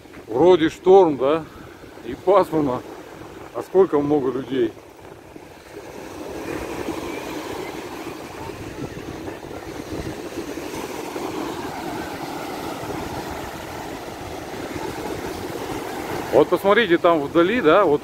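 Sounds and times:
surf breaking on shore: 0.0 - 18.0
wind buffeting microphone: 1.4 - 3.7, 4.6 - 18.0.

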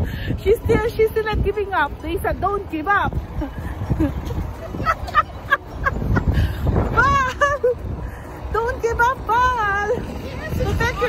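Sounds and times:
wind buffeting microphone: 0.0 - 11.0
woman laughing in cackles: 3.4 - 7.8.

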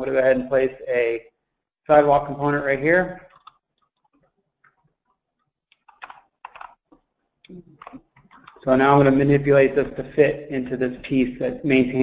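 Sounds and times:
keyboard and mouse clicks: 3.3 - 8.7.

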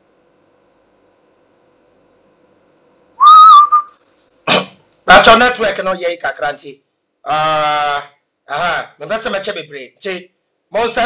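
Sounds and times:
faint steady hum: 0.0 - 11.0
high whistle-like tone: 3.2 - 4.0.

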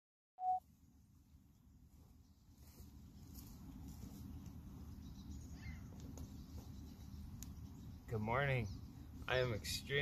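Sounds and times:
short electronic beep: 0.4 - 0.6.

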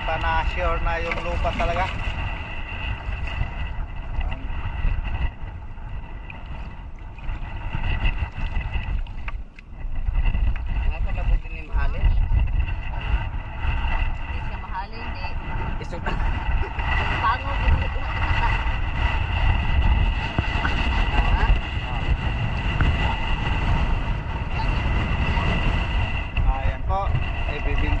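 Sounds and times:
wind rumbling on microphone: 0.0 - 28.0.

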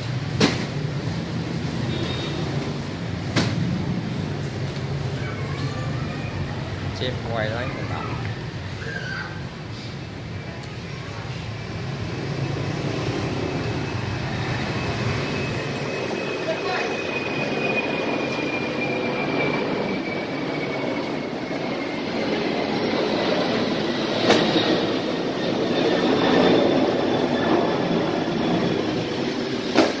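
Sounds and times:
street traffic rumble: 0.0 - 30.0
high whine falling in pitch: 12.3 - 29.8.

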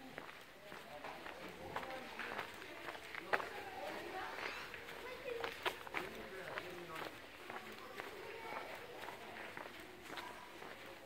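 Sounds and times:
footsteps on cobblestones: 0.0 - 11.0.

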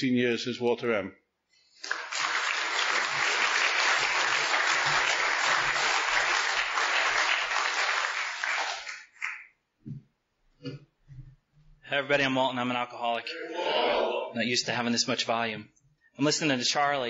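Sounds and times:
audience applauding: 1.8 - 9.5.

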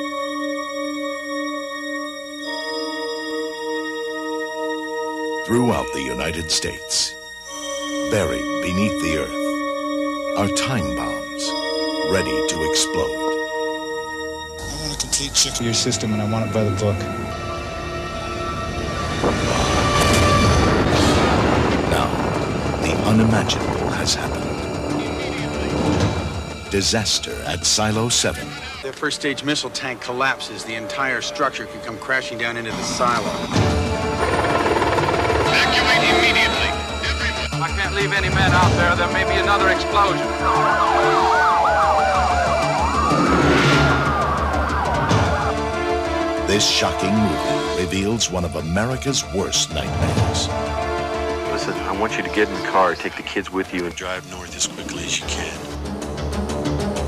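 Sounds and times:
background music: 0.0 - 57.0
rumbling roar of fire explosion: 19.2 - 24.5
sharp fire crackles: 19.4 - 24.6
police siren wailing: 38.5 - 47.7
police siren yelping: 39.3 - 46.8.

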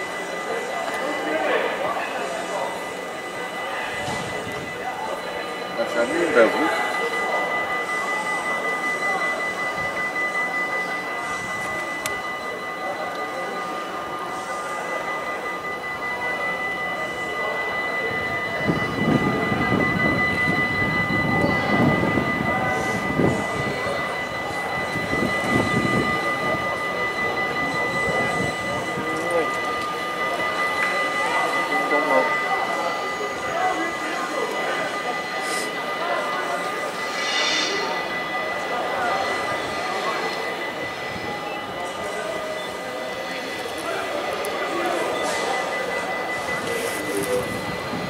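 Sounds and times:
steady high-pitched whine: 0.0 - 48.0
voices talking indistinctly: 0.0 - 48.0.

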